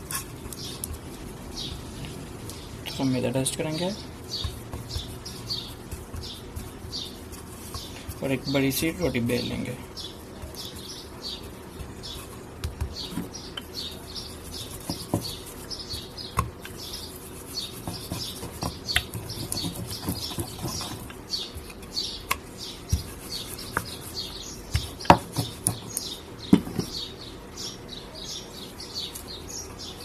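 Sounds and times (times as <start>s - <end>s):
small birds chirping: 0.0s - 30.0s
rolling pin knocking on wooden board: 14.8s - 16.6s, 24.7s - 25.9s, 26.5s - 27.0s.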